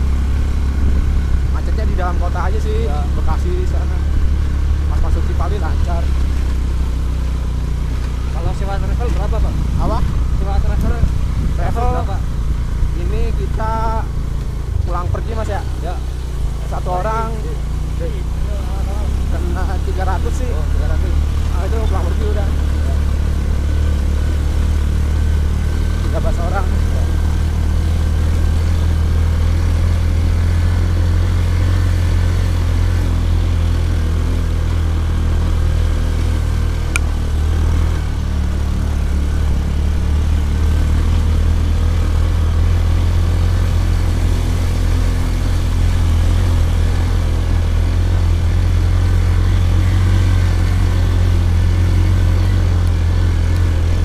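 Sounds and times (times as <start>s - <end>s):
second motorbike: 0.0s - 54.0s
small motorcycle engine droning: 0.0s - 54.0s.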